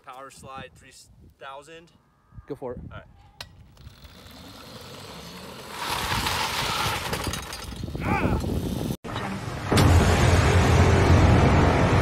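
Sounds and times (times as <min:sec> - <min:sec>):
electric go-kart motor: 0:03.7 - 0:07.2
tyres sliding on asphalt: 0:03.7 - 0:08.0.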